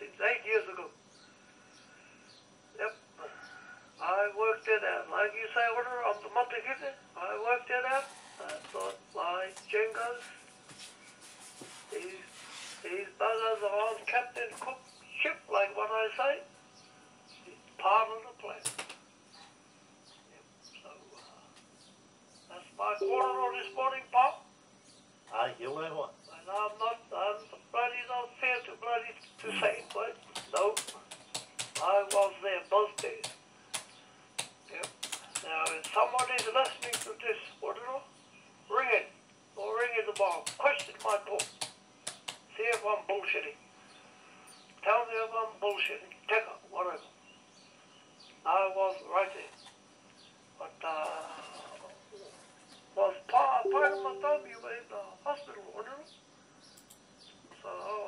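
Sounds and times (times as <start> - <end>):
person speaking over a telephone: 0.0 - 0.9, 4.0 - 10.4, 11.9 - 16.5, 17.5 - 18.7, 22.5 - 24.4, 25.3 - 31.0, 31.8 - 33.3, 34.7 - 38.1, 38.7 - 41.5, 42.5 - 43.6, 53.0 - 56.1
person talking: 4.0 - 10.4, 22.6 - 24.4, 26.4 - 33.4, 34.7 - 37.5, 39.6 - 41.6, 42.6 - 43.5, 53.0 - 56.0
keyboard keystrokes clicking: 30.3 - 32.3, 33.0 - 37.1, 40.1 - 42.8.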